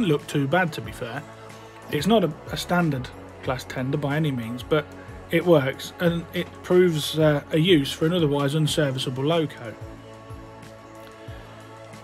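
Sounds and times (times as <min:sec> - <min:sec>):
quiet music with held notes: 0:00.0 - 0:12.0.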